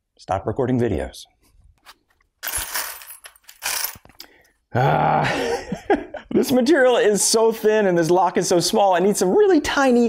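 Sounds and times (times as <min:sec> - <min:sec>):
metal screws rattling in plastic bin: 0:02.4 - 0:04.2.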